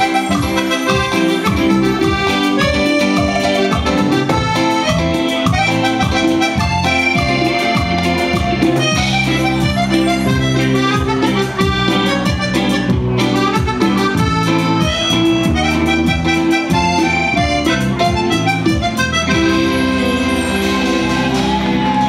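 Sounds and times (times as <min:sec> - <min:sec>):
bass: 0:00.0 - 0:22.0
electric guitar: 0:00.0 - 0:22.0
percussion dance beat: 0:00.0 - 0:22.0.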